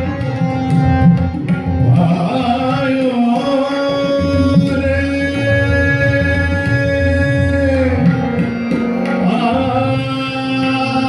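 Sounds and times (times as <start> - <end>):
low percussion: 0.0 - 11.0
tanpura drone: 0.0 - 11.0
man singing a long note: 9.2 - 11.0.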